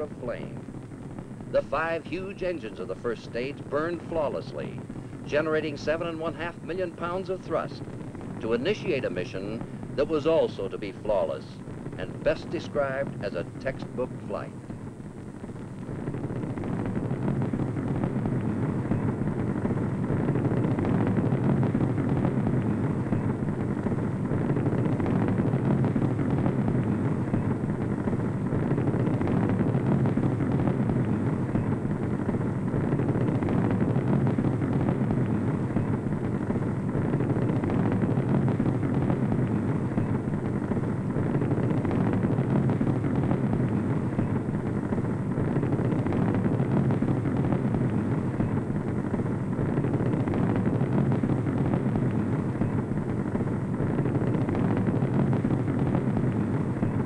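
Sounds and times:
rocket engines rumbling: 0.0 - 57.0.

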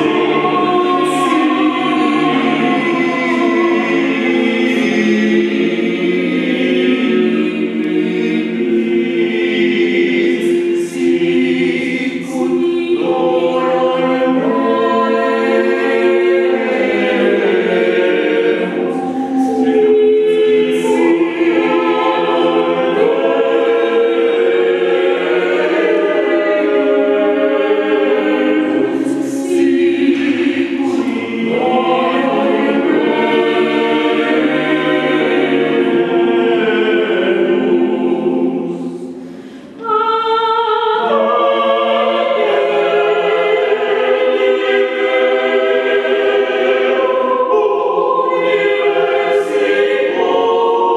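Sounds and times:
vocal group singing a cappella: 0.0 - 50.9.

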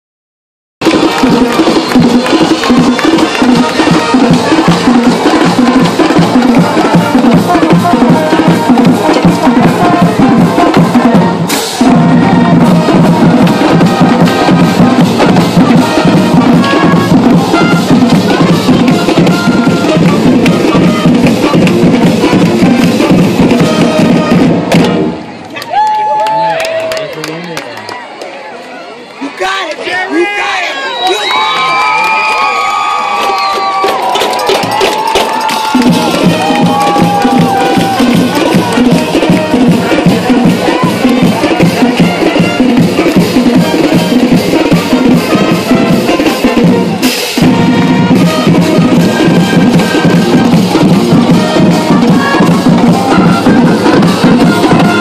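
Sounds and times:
marching band playing: 0.8 - 25.4, 31.2 - 55.0
drumline beating: 0.8 - 26.9, 31.1 - 55.0
people shouting: 29.8 - 42.7, 49.7 - 55.0.

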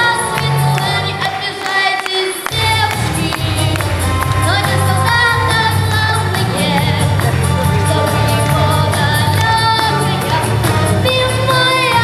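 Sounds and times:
backing track with steady beat: 2.5 - 12.0
boy singing into a microphone: 4.4 - 12.0.

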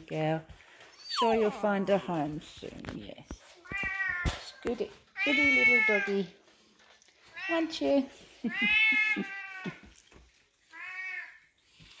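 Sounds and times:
cat meowing: 8.5 - 9.8, 10.7 - 11.4.

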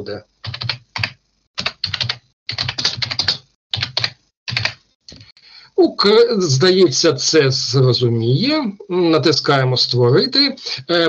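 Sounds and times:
computer keyboard typing: 0.4 - 5.3.

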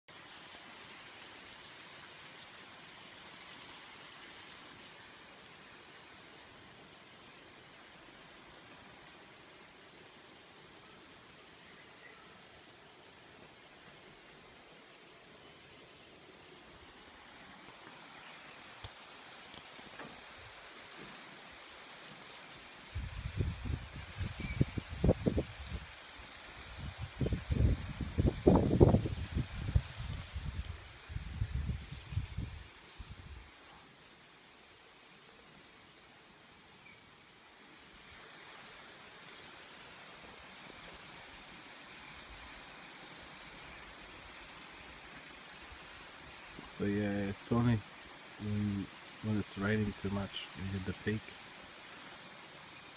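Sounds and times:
wind through trees: 0.1 - 52.9
wind gusts on microphone: 22.8 - 33.5.

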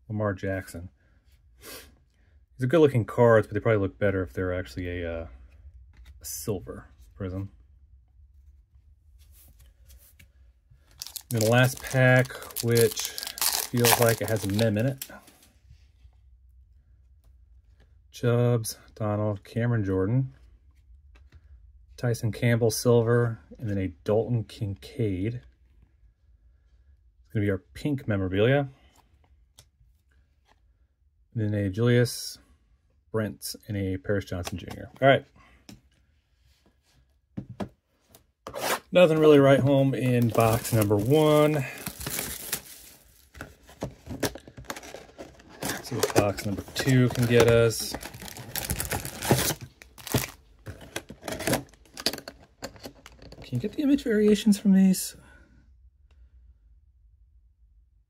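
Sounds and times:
trading cards rustling: 10.8 - 15.5, 38.7 - 53.8.

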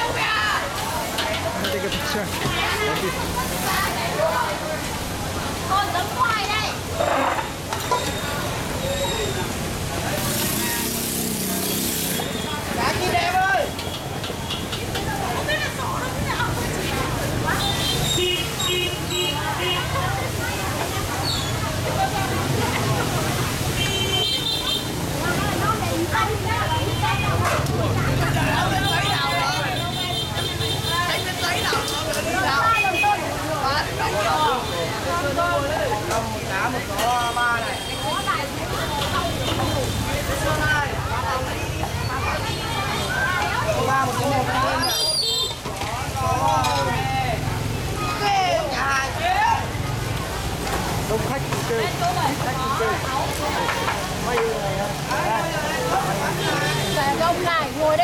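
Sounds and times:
crowd chatter: 0.0 - 58.0
voices talking: 0.0 - 58.0
noodles sizzling in a wok: 9.5 - 12.5.

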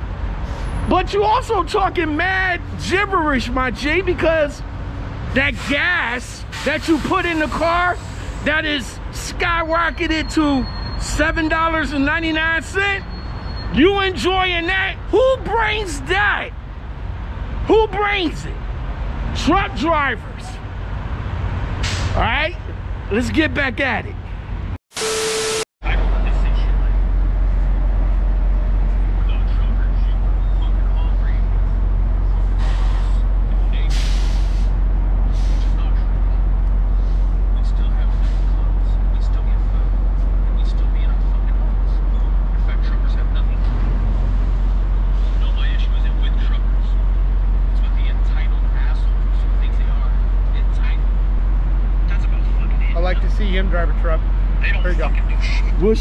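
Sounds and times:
diesel trucks idling: 0.0 - 24.7, 25.9 - 56.0
air hissing: 33.9 - 35.8.

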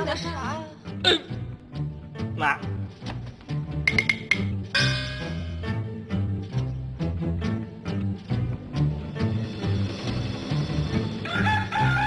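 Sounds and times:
rooster crowing: 11.2 - 12.0.

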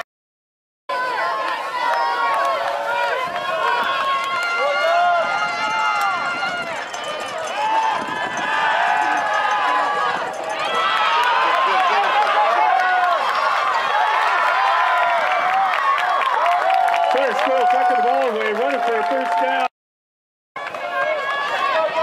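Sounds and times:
spectators talking and calling out: 0.9 - 14.3.

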